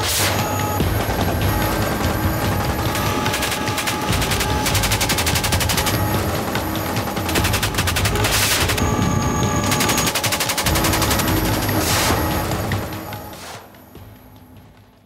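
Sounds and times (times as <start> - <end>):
automatic gunfire: 0.0 - 13.6
music: 0.0 - 15.0.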